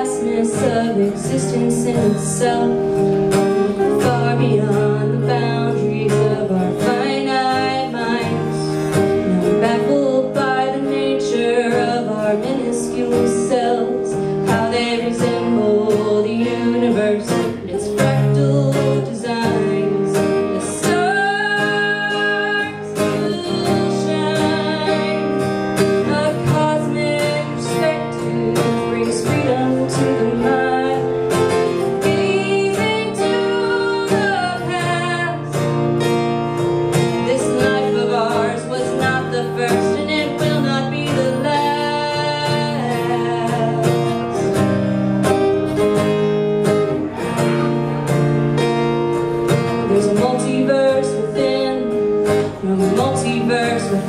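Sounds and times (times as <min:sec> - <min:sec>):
woman singing: 0:00.0 - 0:47.6, 0:49.4 - 0:54.0
strummed acoustic guitar: 0:00.0 - 0:54.0.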